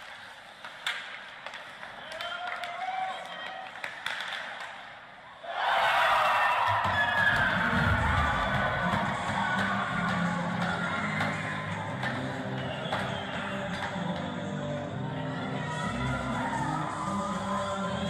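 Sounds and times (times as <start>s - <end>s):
goal music over loudspeakers: 6.7s - 18.0s.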